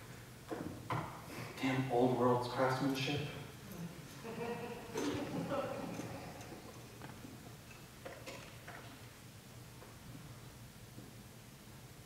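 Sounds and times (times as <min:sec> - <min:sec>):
clicks and knocks on wooden stage: 0:00.5 - 0:01.2, 0:06.5 - 0:09.0.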